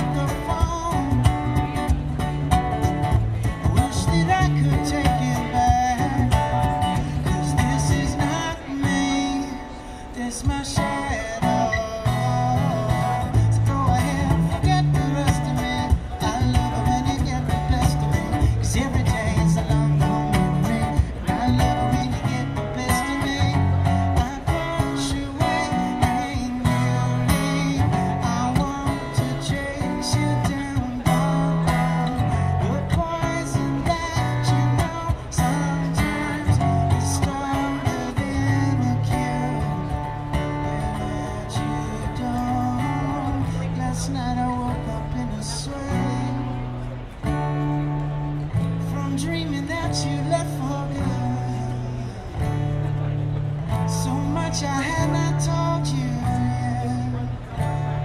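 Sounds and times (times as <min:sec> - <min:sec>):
man singing: 0:00.0 - 0:47.6, 0:48.5 - 0:58.0
acoustic guitar: 0:00.0 - 0:58.0.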